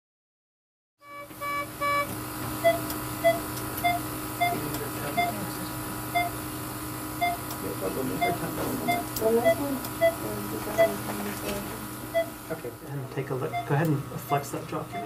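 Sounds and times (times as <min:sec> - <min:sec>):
patient monitor beeping: 0:01.0 - 0:06.4, 0:07.1 - 0:12.5, 0:13.2 - 0:15.0
electrical hum: 0:01.0 - 0:15.0.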